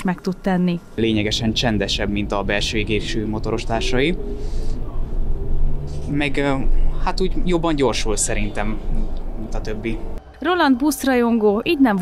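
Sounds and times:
bus low rumble: 0:00.0 - 0:10.2.

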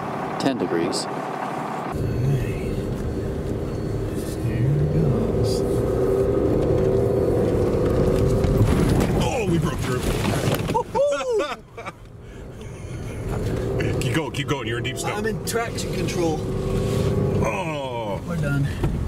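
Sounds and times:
tyres rumbling on snow: 0:00.0 - 0:19.0
diesel engine accelerating: 0:01.1 - 0:09.9, 0:12.2 - 0:18.8
water splashing: 0:08.6 - 0:10.9.

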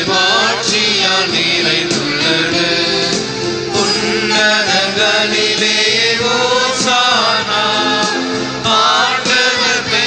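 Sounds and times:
held accompaniment chords: 0:00.0 - 0:10.0.

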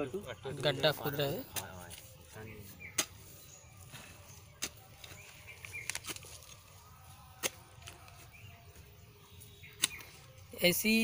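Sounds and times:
hoe chopping dry soil: 0:02.8 - 0:03.4, 0:04.0 - 0:06.3, 0:07.3 - 0:08.5, 0:09.7 - 0:10.3.

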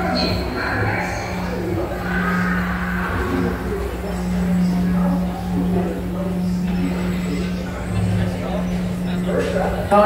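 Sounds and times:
faint voices: 0:00.0 - 0:10.0
ride train humming on track: 0:00.0 - 0:10.0.

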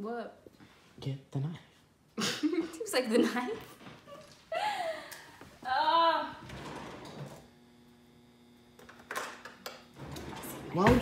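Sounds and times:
faint electrical hum: 0:00.0 - 0:11.0.

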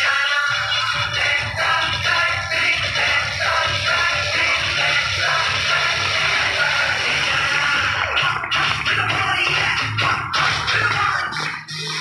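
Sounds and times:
dance music with steady beat: 0:00.0 - 0:12.0.

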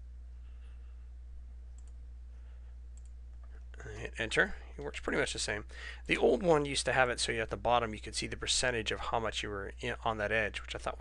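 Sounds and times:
low electrical hum: 0:00.0 - 0:11.0
computer mouse clicks: 0:01.8 - 0:02.0, 0:03.0 - 0:03.6.

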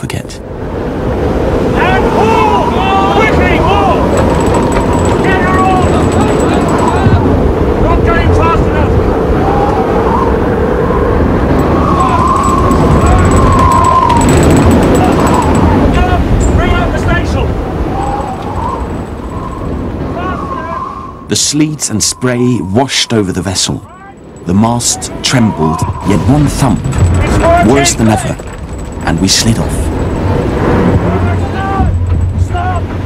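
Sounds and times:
gale wind howling: 0:00.0 - 0:33.0
heavy seas roaring: 0:00.0 - 0:33.0
men shouting: 0:01.6 - 0:04.4, 0:05.1 - 0:10.5, 0:11.7 - 0:19.0, 0:31.0 - 0:33.0.

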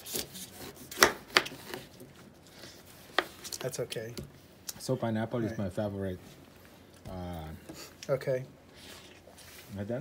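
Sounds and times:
knife chopping pineapple: 0:00.0 - 0:01.9.

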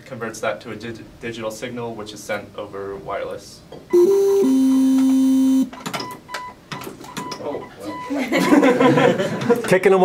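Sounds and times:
electronic beep tune: 0:03.9 - 0:06.5
faint high beeps: 0:03.9 - 0:08.1.

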